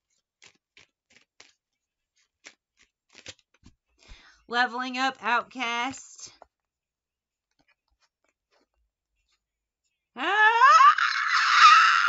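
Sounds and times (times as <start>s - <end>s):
woman screaming: 10.2s - 12.0s.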